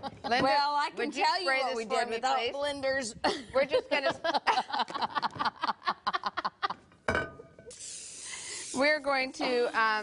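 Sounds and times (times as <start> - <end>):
women laughing: 3.2 - 6.8.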